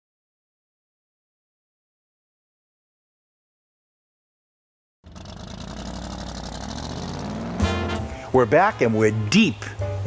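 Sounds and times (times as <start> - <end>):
vehicle engine idling: 5.0 - 8.7.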